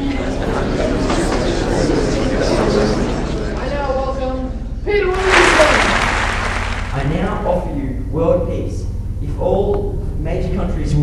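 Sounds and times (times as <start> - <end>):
audience applauding: 5.1 - 7.3.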